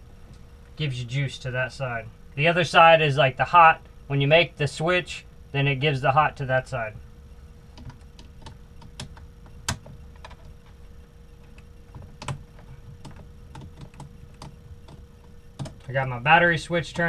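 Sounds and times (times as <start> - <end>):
wires and terminals clicking: 7.7 - 16.0.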